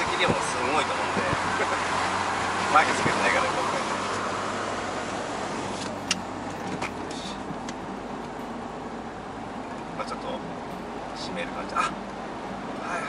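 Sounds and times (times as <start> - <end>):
wind rushing through car window: 0.0 - 7.8
road noise: 0.0 - 13.0.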